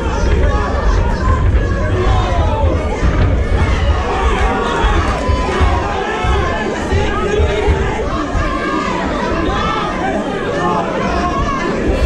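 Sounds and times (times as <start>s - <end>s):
babble of overlapping voices: 0.0s - 12.0s.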